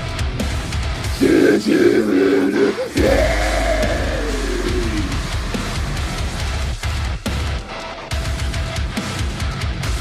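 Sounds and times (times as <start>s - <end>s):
heavy metal music: 0.0s - 10.0s.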